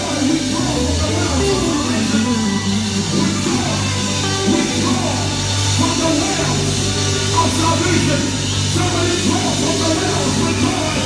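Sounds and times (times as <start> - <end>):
bass line: 0.0 - 11.0
electric guitar playing lead: 0.0 - 11.0.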